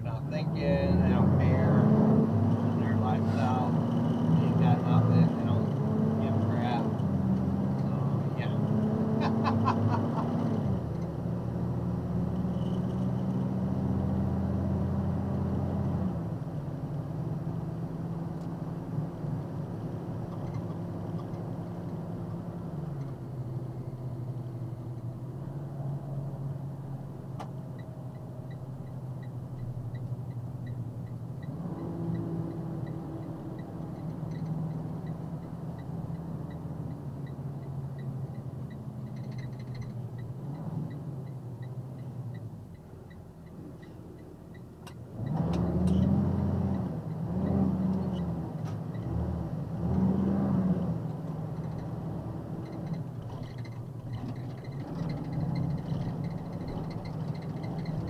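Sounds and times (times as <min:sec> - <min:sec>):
truck engine running: 0:00.0 - 0:15.9
road noise: 0:00.0 - 0:58.0.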